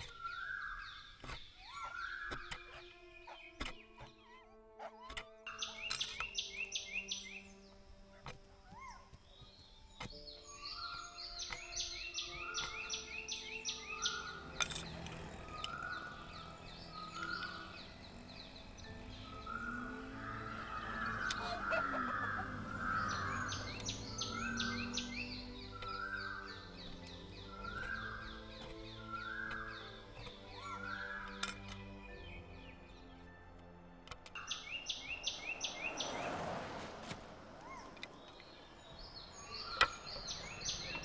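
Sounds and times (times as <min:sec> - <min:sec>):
faint background music: 0:00.0 - 0:36.8
rapid high bird chirps: 0:15.3 - 0:31.4.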